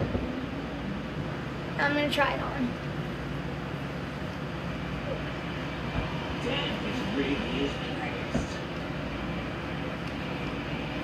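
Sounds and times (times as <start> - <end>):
race engine noise from television: 0.0 - 11.0.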